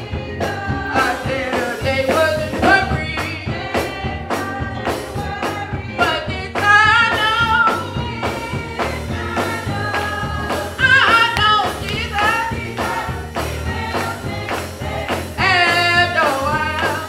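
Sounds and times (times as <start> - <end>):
instrumental accompaniment with beat: 0.0 - 17.0
voices singing gospel: 0.0 - 17.0.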